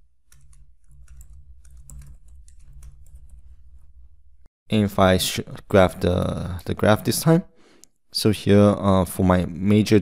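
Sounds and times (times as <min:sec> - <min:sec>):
computer keyboard typing: 0:00.2 - 0:03.9.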